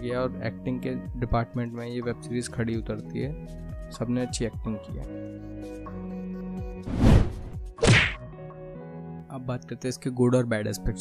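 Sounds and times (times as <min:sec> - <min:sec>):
soft background music: 0:00.0 - 0:11.0
hit and swish transition effects: 0:06.9 - 0:08.2.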